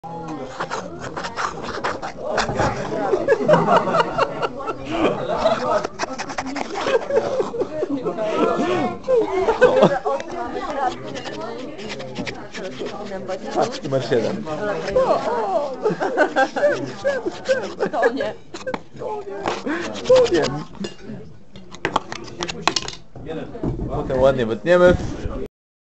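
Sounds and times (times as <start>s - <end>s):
people talking: 0.1s - 21.3s.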